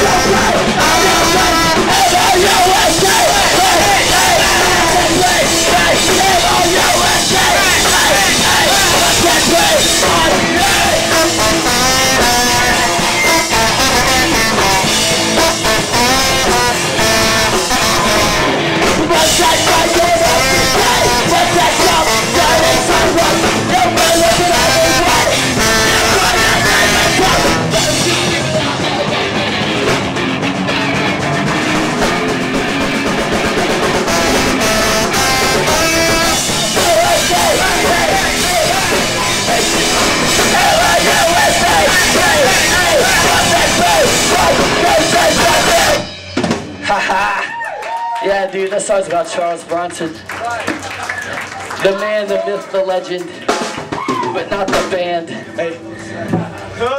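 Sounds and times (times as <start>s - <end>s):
person singing: 0.0s - 30.0s, 33.4s - 46.1s
guitars: 0.0s - 47.5s
drum kit: 0.0s - 48.9s, 53.0s - 55.4s
live punk rock band: 0.0s - 52.4s, 53.0s - 56.9s.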